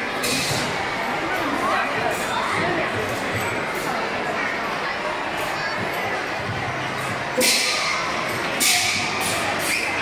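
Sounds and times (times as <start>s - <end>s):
murmur of people in a hall: 0.0s - 10.0s.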